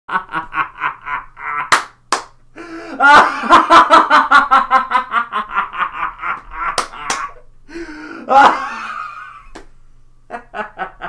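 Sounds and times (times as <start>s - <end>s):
man laughing hard: 0.1s - 1.8s, 2.6s - 9.5s, 10.3s - 11.0s.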